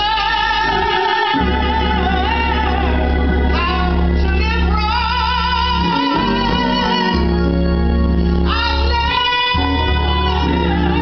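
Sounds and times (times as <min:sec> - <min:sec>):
woman singing gospel solo: 0:00.0 - 0:07.6, 0:08.4 - 0:11.0.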